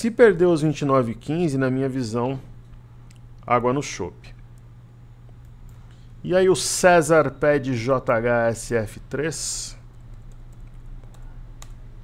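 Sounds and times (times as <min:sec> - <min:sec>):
steady low hum: 0:00.0 - 0:12.0
keyboard keys clicking: 0:09.9 - 0:11.8.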